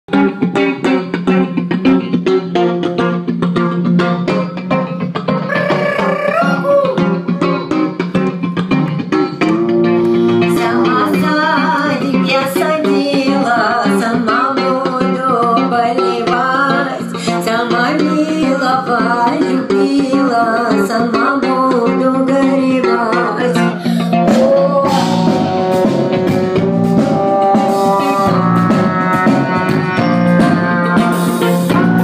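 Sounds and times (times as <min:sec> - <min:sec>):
live band playing: 0:00.1 - 0:32.0
low drone note: 0:09.5 - 0:11.5, 0:24.3 - 0:32.0
woman singing: 0:09.5 - 0:25.4.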